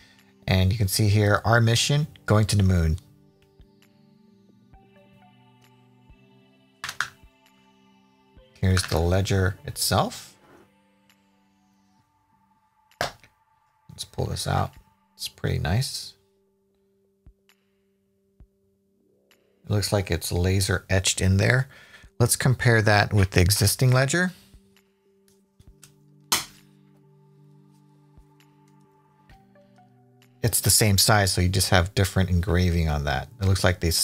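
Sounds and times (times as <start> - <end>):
quiet background music: 0.0 - 34.0.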